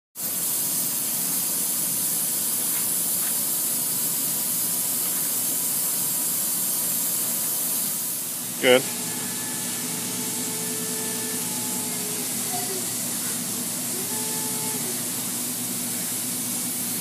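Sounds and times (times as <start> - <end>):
cnc router hissing: 8.2 - 17.0.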